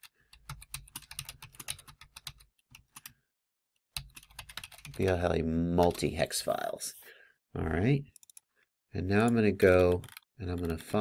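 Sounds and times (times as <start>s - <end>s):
typing on computer keyboard: 0.3s - 3.1s, 4.0s - 5.1s, 9.2s - 11.0s.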